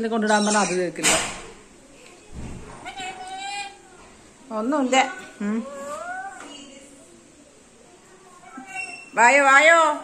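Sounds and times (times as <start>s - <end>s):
parrot squeaky call: 0.2s - 0.9s, 8.6s - 9.2s.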